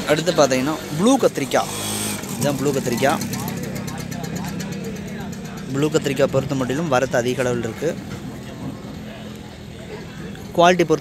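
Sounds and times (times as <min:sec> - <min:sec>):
low engine hum: 0:01.3 - 0:10.6
man's voice: 0:02.3 - 0:08.2.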